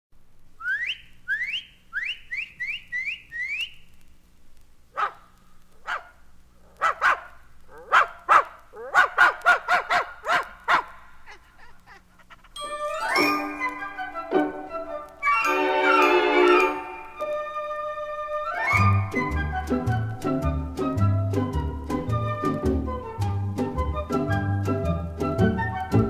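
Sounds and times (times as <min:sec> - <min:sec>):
person whistling rising whistles: 0:00.6 - 0:03.8, 0:12.6 - 0:26.0
dog barking: 0:05.0 - 0:11.5.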